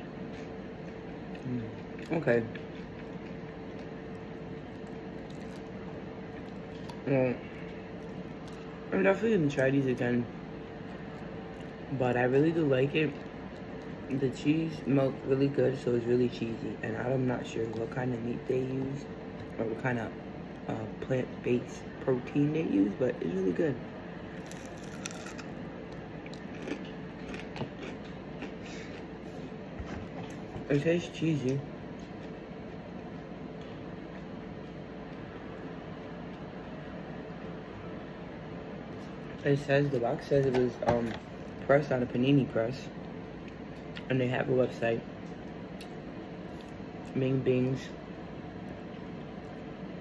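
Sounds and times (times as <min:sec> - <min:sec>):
steady background hum: 0:00.0 - 0:50.0
person chewing: 0:00.2 - 0:08.8, 0:24.4 - 0:29.4.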